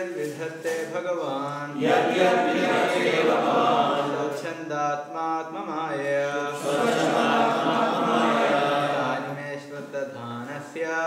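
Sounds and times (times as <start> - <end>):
voices singing a chant: 0.1 - 11.0.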